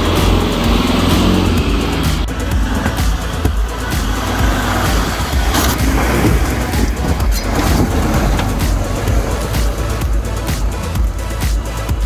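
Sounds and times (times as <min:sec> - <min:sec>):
electronic music with steady beat: 0:00.0 - 0:12.0
vehicle engine crawling: 0:00.0 - 0:12.0.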